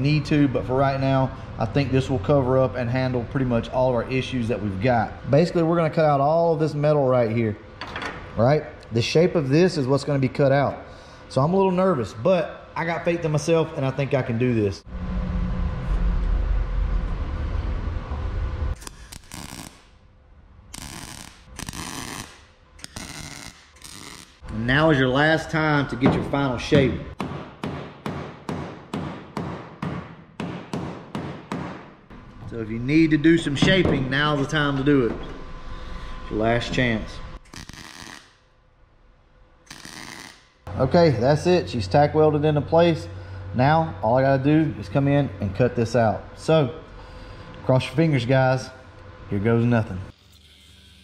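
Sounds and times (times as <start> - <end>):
low rumble: 14.8 - 18.8, 32.1 - 37.4
welder arc crackling: 18.8 - 20.0, 20.7 - 24.5, 37.4 - 38.4, 39.7 - 40.4.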